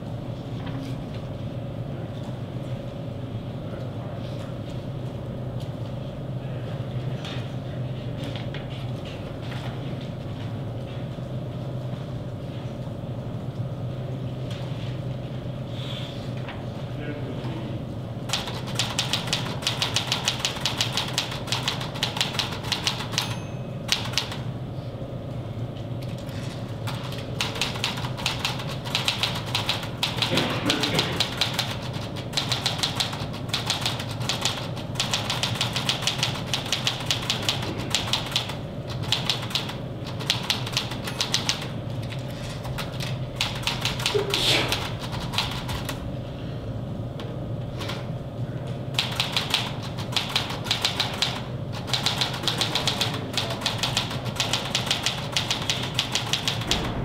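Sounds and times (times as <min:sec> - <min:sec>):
low room hum: 0:00.0 - 0:57.0
fast typing on keyboard: 0:18.3 - 0:23.3, 0:23.9 - 0:24.4, 0:26.2 - 0:46.0, 0:49.0 - 0:56.8.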